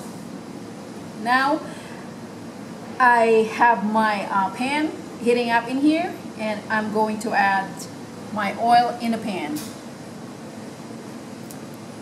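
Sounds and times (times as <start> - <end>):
fan hiss: 0.0 - 12.0.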